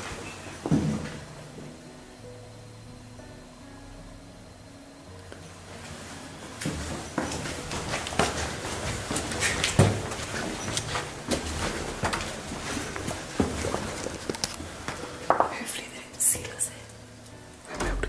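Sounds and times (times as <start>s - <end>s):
boot footsteps on stone stairs: 6.6s - 15.6s.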